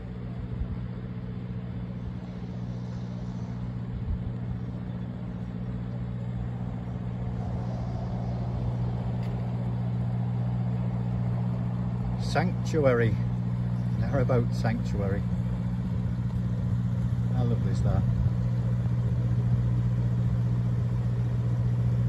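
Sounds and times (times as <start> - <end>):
boat engine droning: 0.0 - 22.0.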